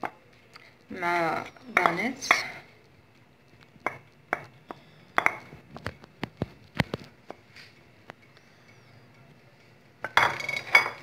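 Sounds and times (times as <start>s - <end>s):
wooden spoon knocking on bowl: 3.9s - 5.5s.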